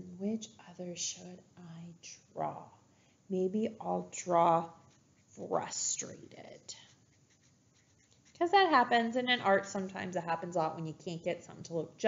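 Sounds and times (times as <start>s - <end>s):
felt-tip marker writing on paper: 4.2s - 10.0s.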